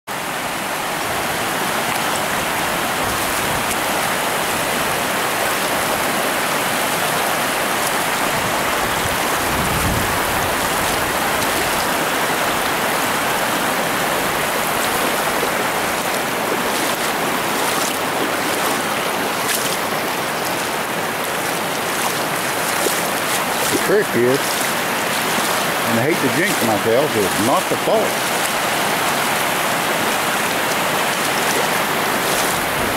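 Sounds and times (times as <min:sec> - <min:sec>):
river water rushing over rocks: 0:00.1 - 0:32.9.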